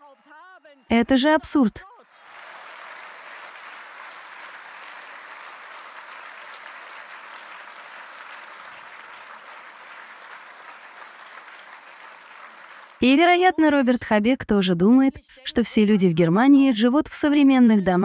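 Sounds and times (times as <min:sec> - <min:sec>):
audience applauding: 0:01.8 - 0:13.3.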